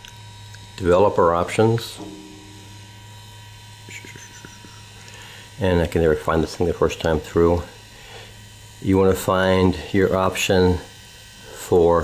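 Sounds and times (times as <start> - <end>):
low electrical hum: 0.0 - 12.0
faint high tone: 2.0 - 3.1.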